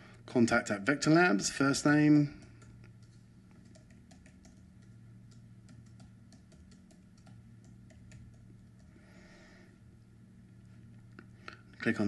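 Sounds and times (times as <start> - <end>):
low steady hum: 0.0 - 12.0
typing on computer keyboard: 2.4 - 8.9.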